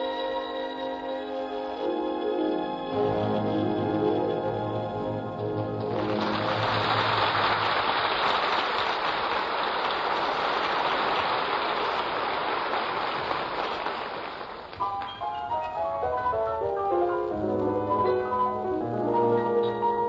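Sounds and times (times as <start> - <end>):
studio audience applauding: 5.8 - 14.8
mallet percussion notes: 14.8 - 20.0.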